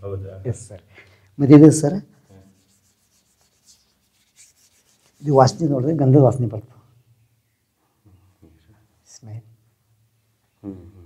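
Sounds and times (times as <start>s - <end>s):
man saying a word: 10.6s - 11.0s.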